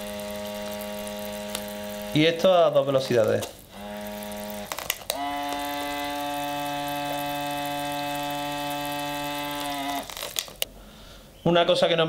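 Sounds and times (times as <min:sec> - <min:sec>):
air pump humming: 0:00.0 - 0:10.8.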